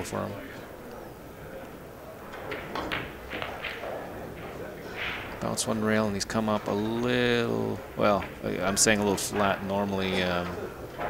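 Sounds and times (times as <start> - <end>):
pool cue and balls clicking: 0.0 - 11.0.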